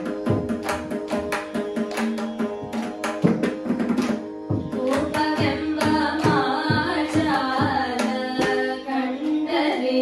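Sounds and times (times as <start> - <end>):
women singing devotional song: 4.6 - 10.0.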